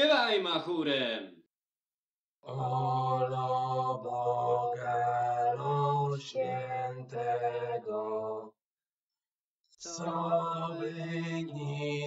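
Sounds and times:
slow chanted singing: 2.4s - 8.6s, 9.8s - 12.0s.

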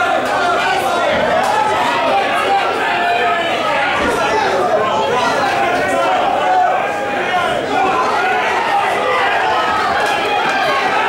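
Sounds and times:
crowd talking and shouting: 0.0s - 11.0s.

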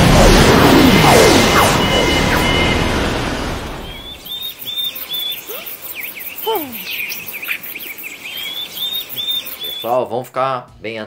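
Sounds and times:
loud rushing noise: 0.0s - 4.3s
birds chirping and whistling: 3.7s - 10.2s.

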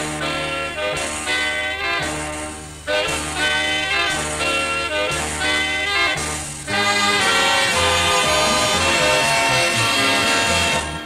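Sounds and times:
instrumental pop band music: 0.0s - 11.0s.

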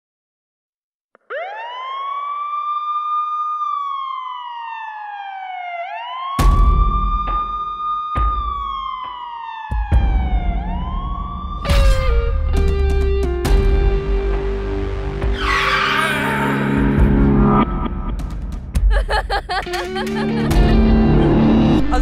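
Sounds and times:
siren wailing: 1.3s - 12.2s, 15.3s - 18.0s.

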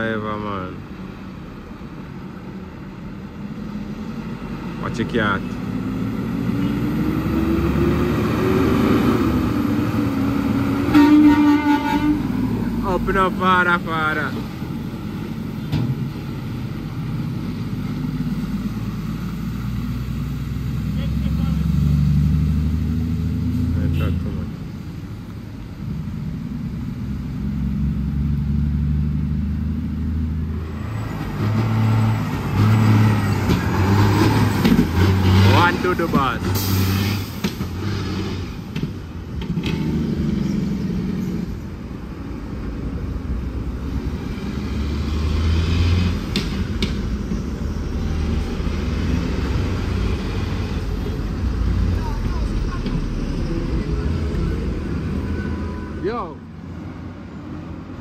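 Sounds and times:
diesel truck engines at low speed: 0.0s - 58.0s.

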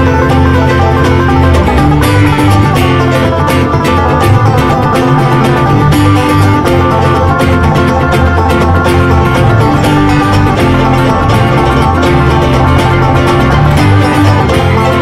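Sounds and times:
acoustic guitar: 0.0s - 15.0s
fast picked banjo: 0.0s - 15.0s
steady bass line: 0.0s - 15.0s.

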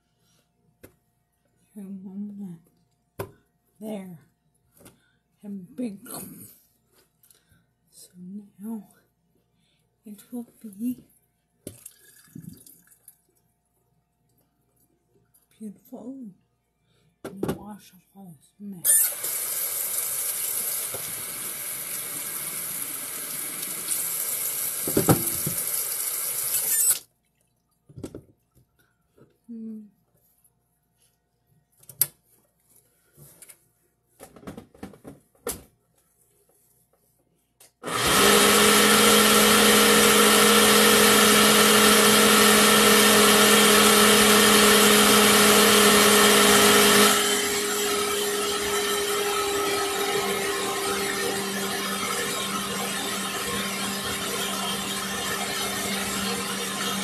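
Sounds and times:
kitchen appliance motor running: 18.9s - 27.0s, 37.8s - 57.0s
faucet running into sink: 19.0s - 27.0s
blender jar being rinsed: 19.0s - 27.1s, 37.9s - 57.0s.

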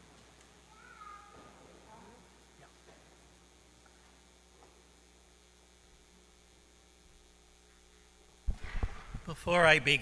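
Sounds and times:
child squealing: 0.7s - 1.4s.

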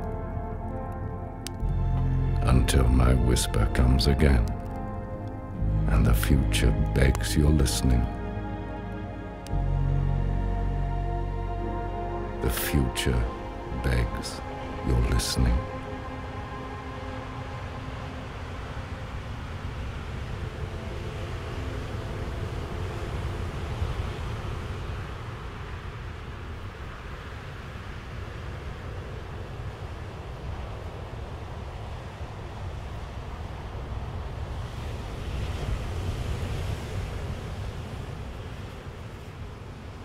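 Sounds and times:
held music notes: 0.0s - 23.9s
wind: 0.0s - 40.0s
sea surf rushing: 5.8s - 40.0s.

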